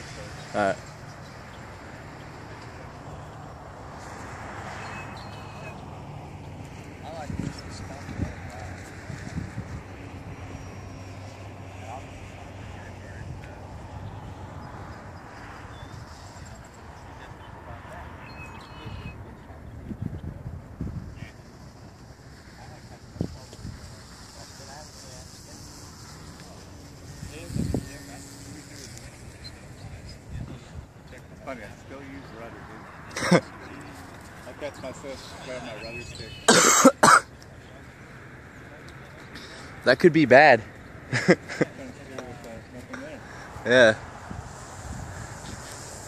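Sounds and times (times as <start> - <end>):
wind noise on microphone: 6.9 - 11.1, 18.3 - 31.0, 44.0 - 46.0.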